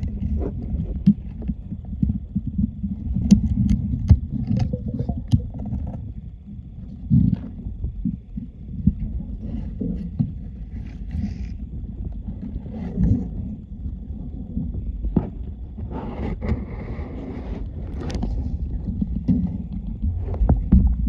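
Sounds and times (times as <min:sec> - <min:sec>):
muffled underwater rumble and sloshing: 0:00.0 - 0:21.0.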